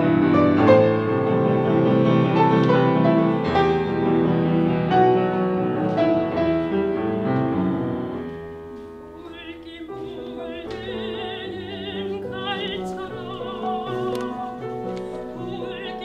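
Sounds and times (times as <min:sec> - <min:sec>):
piano playing: 0:00.0 - 0:16.0
soprano singing with vibrato: 0:09.2 - 0:16.0.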